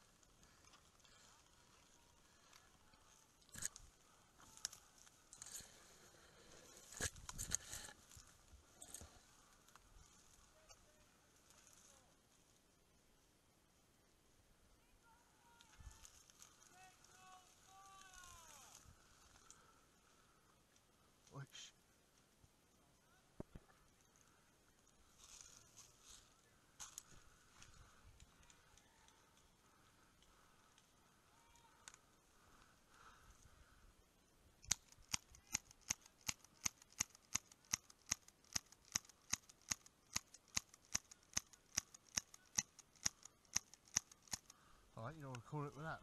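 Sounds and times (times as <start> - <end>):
faint clicks: 26.8 - 33.5, 34.6 - 45.4.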